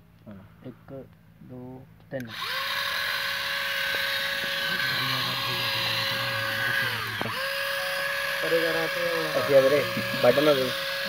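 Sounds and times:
toy electric motors whining: 0:02.2 - 0:11.0.

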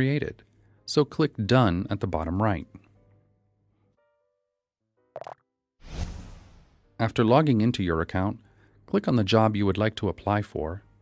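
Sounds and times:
loud rushing whoosh: 0:05.8 - 0:06.9.

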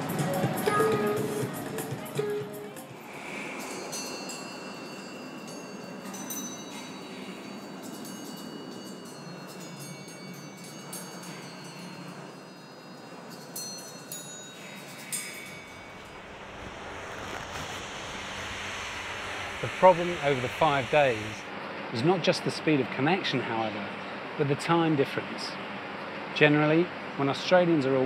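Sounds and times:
steady background hiss: 0:02.6 - 0:28.0
metal bowls ringing bell-like: 0:03.3 - 0:16.1.

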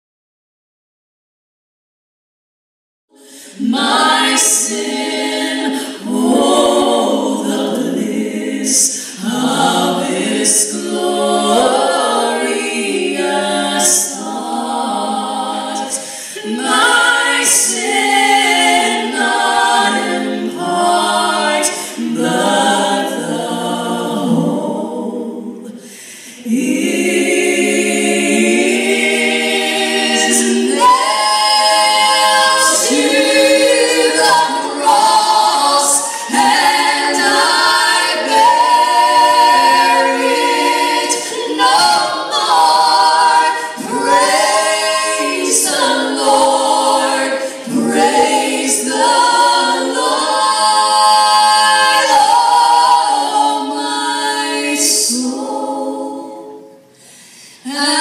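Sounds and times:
two women singing in harmony: 0:03.1 - 0:58.0.

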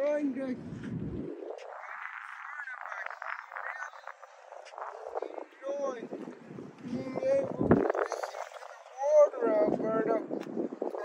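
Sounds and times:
faint outdoor ambience: 0:00.0 - 0:11.0
muffled voices talking: 0:01.4 - 0:11.0.

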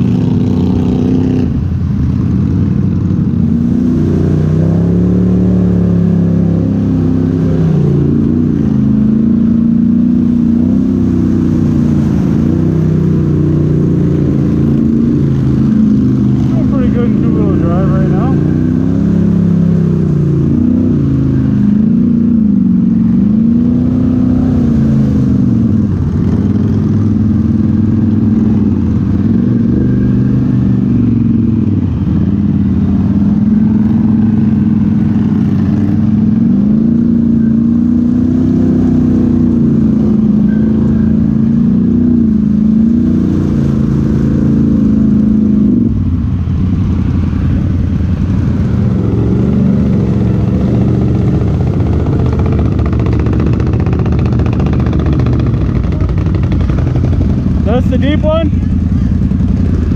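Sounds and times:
atv engine running: 0:00.0 - 0:59.9.

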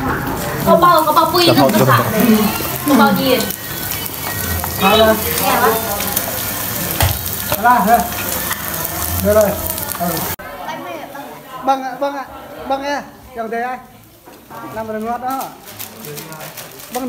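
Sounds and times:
food frying in a pan: 0:00.0 - 0:10.4, 0:13.5 - 0:17.0.

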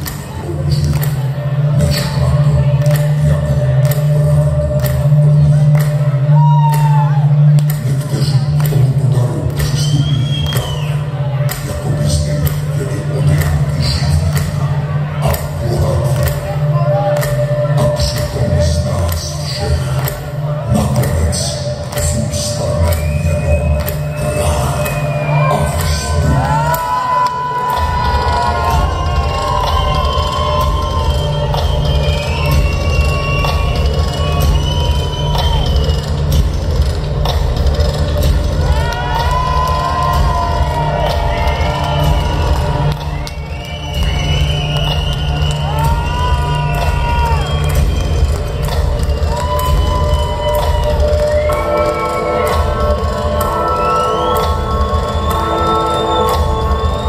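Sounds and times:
crowd cheering and shouting: 0:00.0 - 0:57.0
music over loudspeakers: 0:00.0 - 0:57.0.

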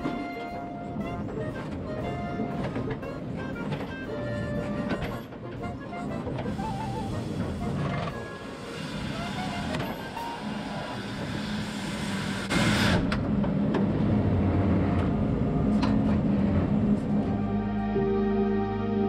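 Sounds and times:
music: 0:00.0 - 0:11.1, 0:17.0 - 0:19.0
heavy vehicle running under load: 0:00.0 - 0:17.8.

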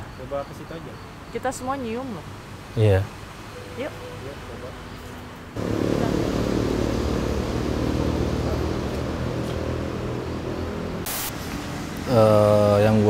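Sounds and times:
low rumbling drone: 0:05.6 - 0:11.2
burst of static noise: 0:11.0 - 0:11.5.

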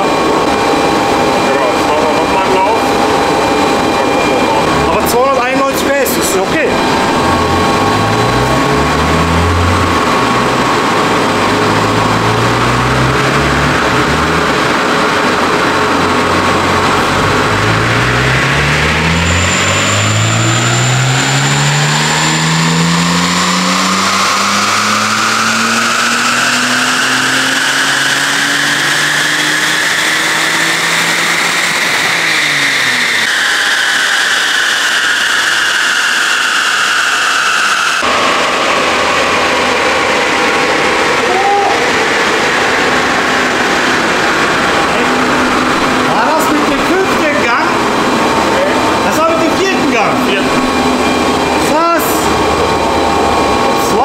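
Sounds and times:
car engine at full throttle: 0:00.0 - 0:54.0
high whine: 0:00.0 - 0:54.0.

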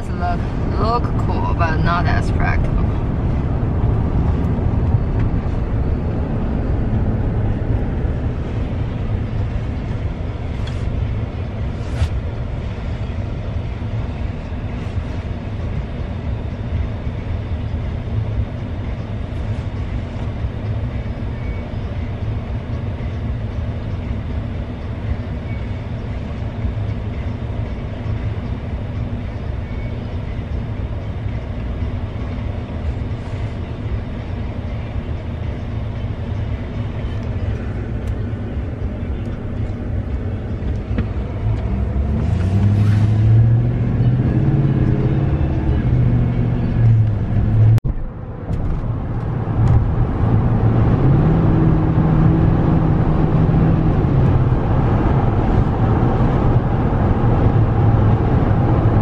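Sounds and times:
low hum rising and falling: 0:00.0 - 0:20.7, 0:35.8 - 0:59.0
road and engine noise in car: 0:00.0 - 0:59.0.

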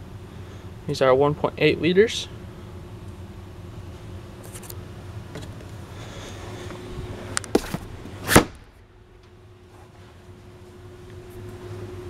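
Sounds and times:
low room hum: 0:00.0 - 0:12.0
hatch shutting thump: 0:07.5 - 0:08.8.

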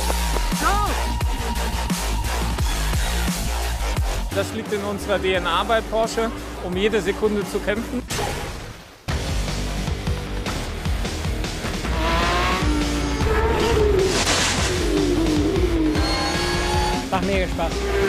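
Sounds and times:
background music with steady beat: 0:00.0 - 0:08.0, 0:09.1 - 0:18.0
race car engines: 0:11.6 - 0:18.0.

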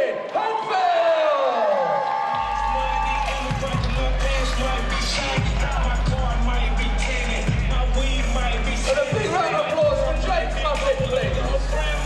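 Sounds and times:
crowd cheering and whooping: 0:00.0 - 0:10.3
loud music with heavy bass: 0:02.4 - 0:12.0.

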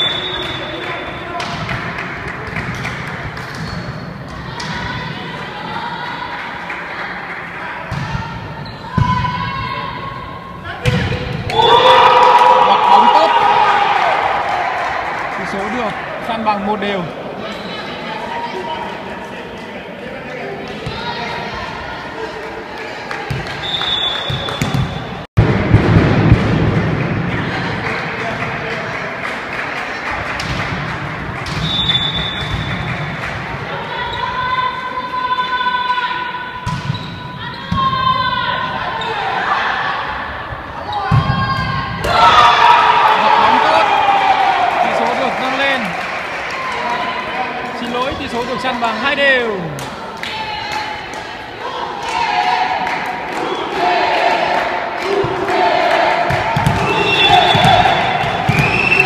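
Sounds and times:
players calling out: 0:07.5 - 0:19.1, 0:33.6 - 0:59.0
volleyball struck and bouncing: 0:07.9 - 0:09.4, 0:23.3 - 0:27.5, 0:30.4 - 0:33.4, 0:56.3 - 0:59.0.

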